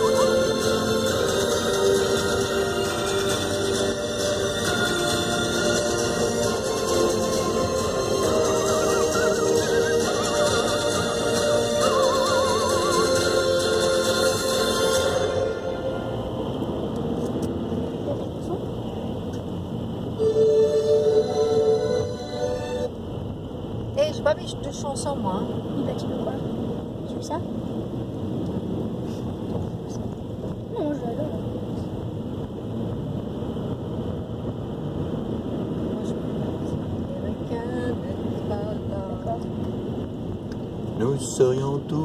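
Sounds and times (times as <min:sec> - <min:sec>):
car interior engine and tyre rumble: 0:00.0 - 0:42.0.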